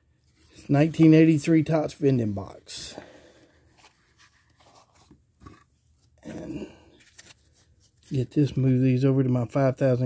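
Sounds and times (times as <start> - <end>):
rustling and scraping of cards: 0.0 - 8.8.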